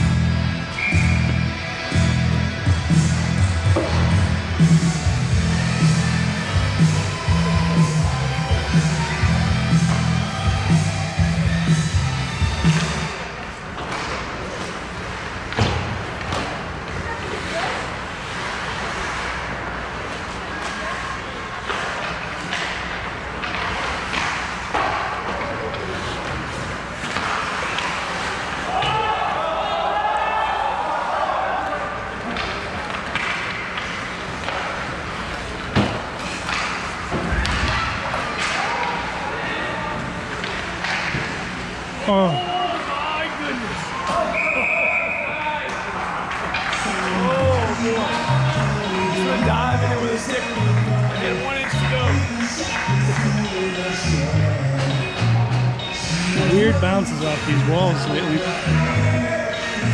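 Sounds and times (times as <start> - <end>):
arena music: 0.0 - 13.4, 46.8 - 59.9
hockey sticks and puck knocking: 21.6 - 28.9, 32.2 - 39.0, 40.3 - 41.5
spectators and players shouting: 28.5 - 32.2, 37.3 - 40.8.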